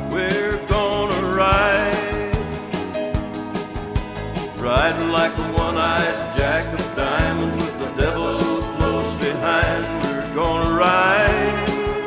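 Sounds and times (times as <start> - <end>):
country band playing: 0.0 - 12.0
steady drum beat: 0.0 - 12.0.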